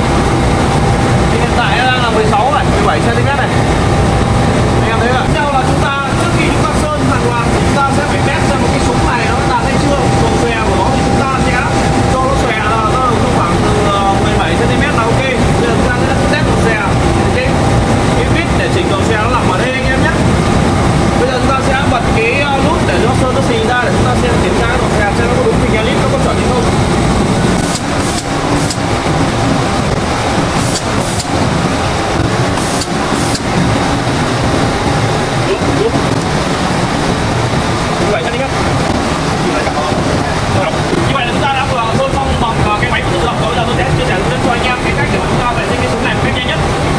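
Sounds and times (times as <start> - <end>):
low machinery hum: 0.0 - 46.9
people talking indistinctly: 0.0 - 46.9
water curtain rushing: 0.0 - 46.9.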